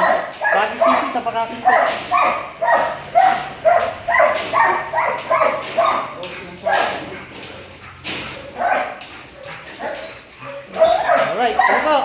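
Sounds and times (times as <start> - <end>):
dog barking: 0.0 - 12.0.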